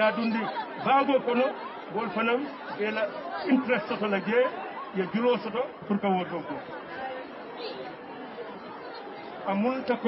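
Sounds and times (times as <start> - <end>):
murmur of crowd chatter: 0.0 - 10.0.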